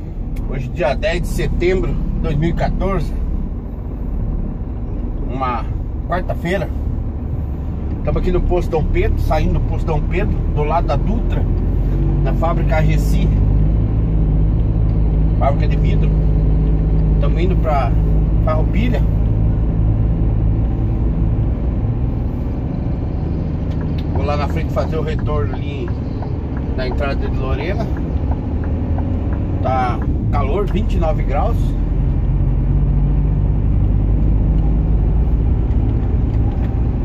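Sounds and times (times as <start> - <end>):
truck diesel engine drone: 0.0 - 37.0.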